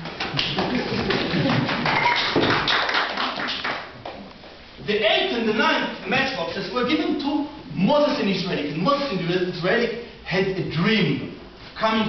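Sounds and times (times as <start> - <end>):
audience applauding: 0.4 - 3.9.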